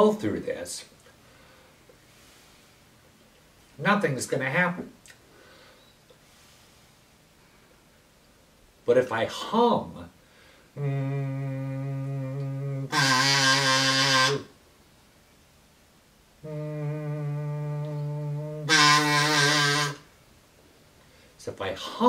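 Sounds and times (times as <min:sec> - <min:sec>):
person humming: 0:10.8 - 0:14.5, 0:16.4 - 0:20.0
kazoo buzzing: 0:10.8 - 0:14.6, 0:16.4 - 0:20.2.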